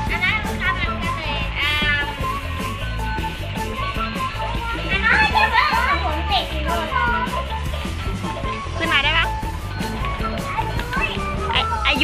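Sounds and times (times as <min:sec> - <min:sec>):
background music: 0:00.0 - 0:12.0
children squealing and shouting: 0:00.4 - 0:09.0.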